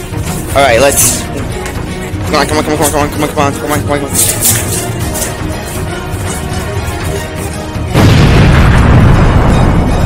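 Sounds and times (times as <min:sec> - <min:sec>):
background music: 0:00.0 - 0:10.0
explosion boom: 0:07.9 - 0:10.0.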